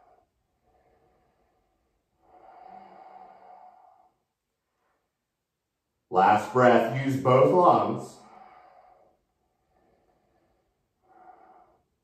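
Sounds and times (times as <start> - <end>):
person breathing slowly: 0.0 - 5.2, 8.1 - 12.0.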